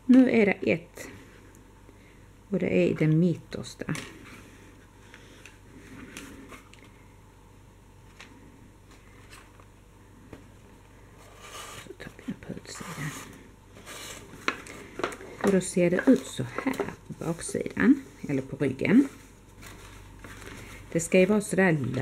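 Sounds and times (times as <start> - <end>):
cardboard cover rustling and scraping: 11.2 - 11.9, 12.7 - 14.9, 17.9 - 22.0.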